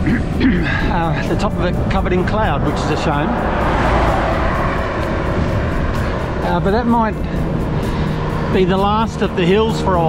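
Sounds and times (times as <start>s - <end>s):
road noise: 0.0s - 10.0s
wind rushing on microphone: 0.8s - 8.6s.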